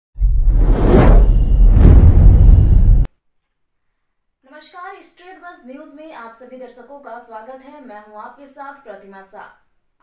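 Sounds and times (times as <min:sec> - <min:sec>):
loud deep bass rumble: 0:00.2 - 0:03.1
whooshes: 0:00.2 - 0:03.1.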